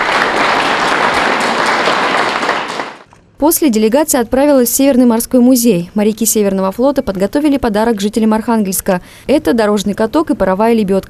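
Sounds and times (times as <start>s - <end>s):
audience applauding: 0.0s - 3.1s.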